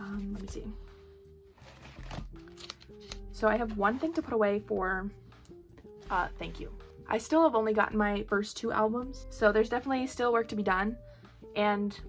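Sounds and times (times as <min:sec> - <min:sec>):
soft background music: 0:00.0 - 0:12.0
plastic pages crinkling and clicking: 0:01.6 - 0:03.2.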